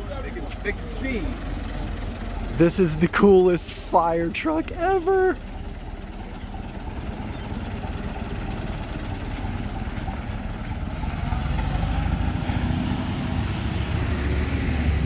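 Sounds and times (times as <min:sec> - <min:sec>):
truck engine rumbling: 0:00.0 - 0:15.0.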